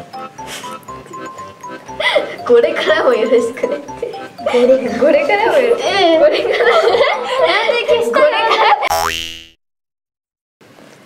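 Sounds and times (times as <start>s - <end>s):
person laughing while speaking: 4.1s - 8.9s
comic boing sound effect: 8.9s - 9.6s.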